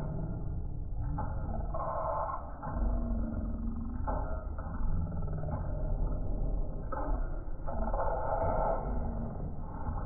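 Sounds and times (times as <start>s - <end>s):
subwoofer playing deep bass: 0.0s - 10.0s.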